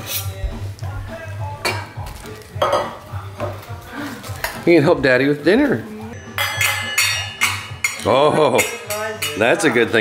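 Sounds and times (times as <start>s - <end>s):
metal pots and pans clanking: 2.6s - 3.6s, 6.2s - 10.0s.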